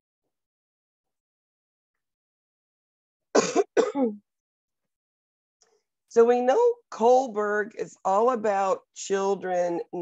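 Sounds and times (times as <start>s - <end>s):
woman coughing: 3.4s - 4.2s.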